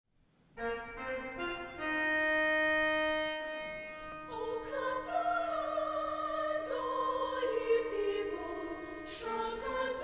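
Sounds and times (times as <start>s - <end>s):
pipe organ chords: 0.6s - 5.9s.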